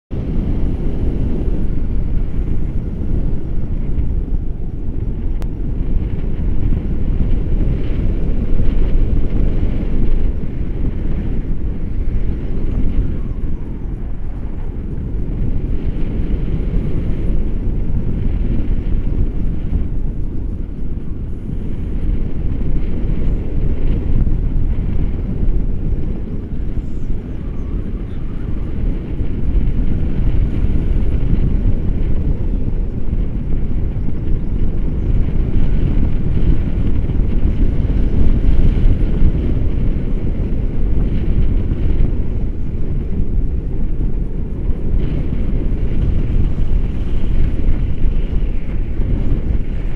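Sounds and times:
wind rushing over microphone: 0.0s - 49.9s.

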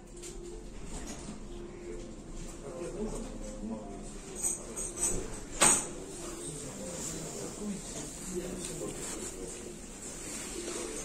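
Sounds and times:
faint background voices: 0.7s - 11.0s.

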